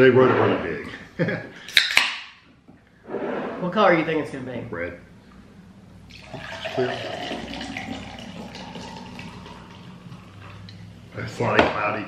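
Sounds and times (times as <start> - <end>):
fizzy drink pouring and foaming: 6.1 - 10.9.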